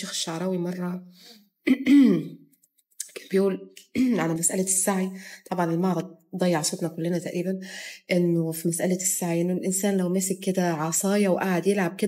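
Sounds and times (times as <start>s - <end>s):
woman clearing her throat: 1.7s - 2.4s.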